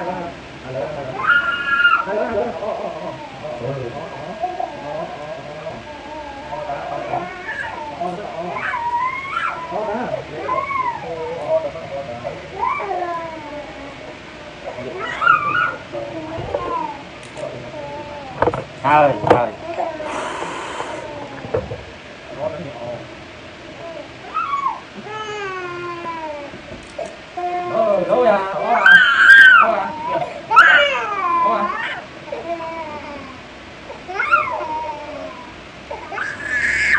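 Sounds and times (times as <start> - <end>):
toddler crying and wailing: 1.1 - 2.1, 2.9 - 11.4, 12.5 - 14.1, 14.7 - 20.2, 23.8 - 26.6, 27.4 - 36.9.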